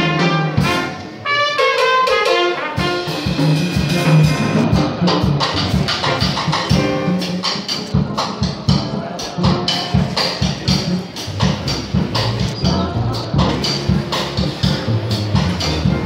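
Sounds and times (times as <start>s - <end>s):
drum kit keeping time: 0.0s - 16.0s
plucked double bass: 2.8s - 16.0s.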